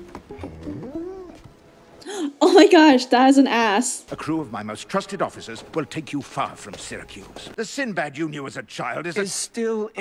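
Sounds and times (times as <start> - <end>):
cartoon dog whining: 0.4 - 1.4.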